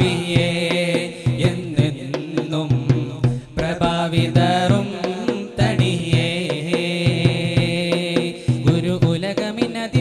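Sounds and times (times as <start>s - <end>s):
group singing devotional song: 0.0s - 10.0s.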